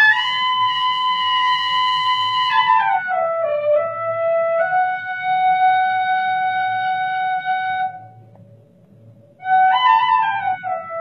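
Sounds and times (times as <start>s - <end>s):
solo flute melody: 0.0s - 8.4s, 9.3s - 11.0s.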